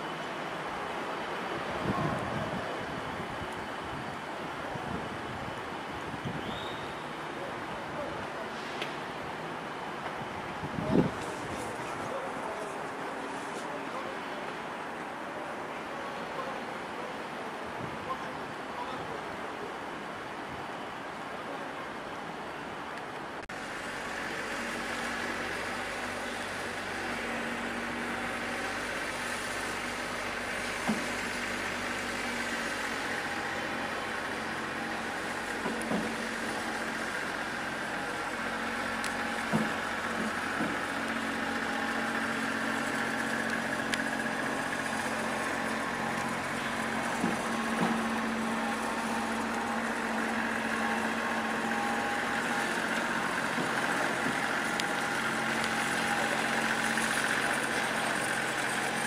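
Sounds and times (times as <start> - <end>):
tractor engine running: 23.5 - 59.0.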